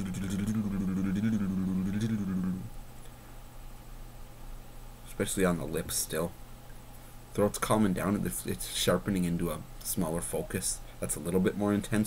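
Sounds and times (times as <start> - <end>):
man moaning: 0.0 - 2.7.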